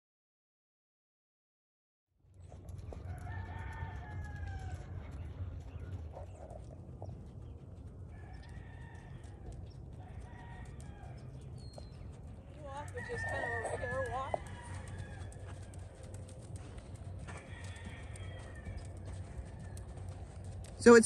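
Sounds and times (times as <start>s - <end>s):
steady low hum: 2.3s - 21.0s
rooster crowing: 2.9s - 5.0s, 8.1s - 11.5s, 12.6s - 16.1s, 17.1s - 20.2s.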